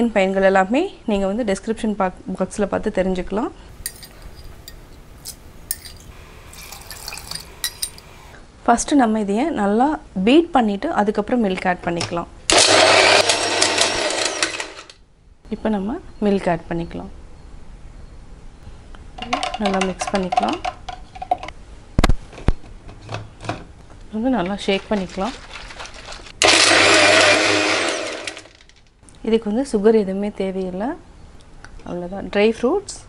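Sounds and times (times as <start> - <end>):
electric mixer grinder running: 12.5 - 14.8, 26.4 - 28.6.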